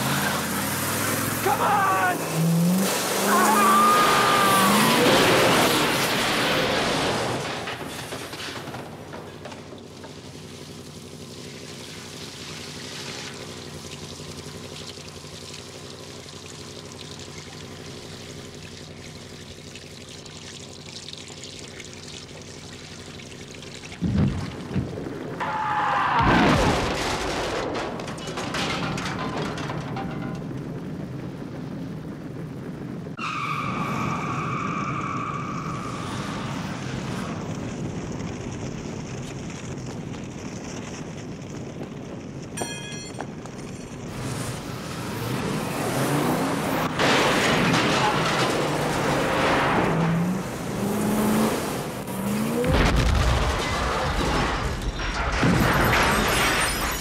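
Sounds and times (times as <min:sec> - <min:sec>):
large fire rushing: 0:00.0 - 0:13.5, 0:24.0 - 0:42.6, 0:43.4 - 0:57.0
crashes: 0:00.0 - 0:13.7, 0:24.0 - 0:33.0, 0:42.7 - 0:57.0
big blast: 0:25.4 - 0:28.1.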